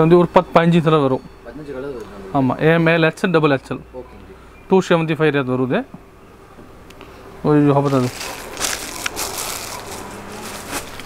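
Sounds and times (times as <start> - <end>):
plastic packaging crinkling: 7.8 - 11.0.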